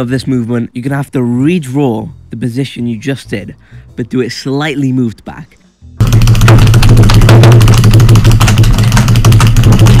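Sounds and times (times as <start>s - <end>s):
bass-heavy music with drumming: 6.0s - 10.0s.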